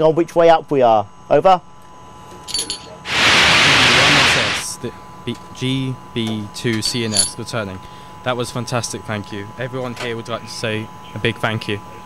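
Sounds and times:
radio static hiss: 0:03.1 - 0:04.8.

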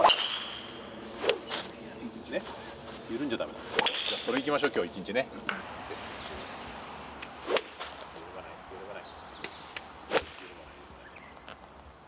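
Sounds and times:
golf swing whoosh and crack: 0:00.0 - 0:01.8, 0:03.6 - 0:04.4, 0:07.1 - 0:08.1, 0:10.0 - 0:10.6.

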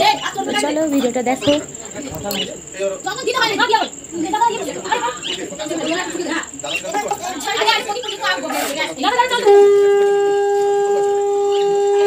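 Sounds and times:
conch shell blown: 0:09.2 - 0:12.0.

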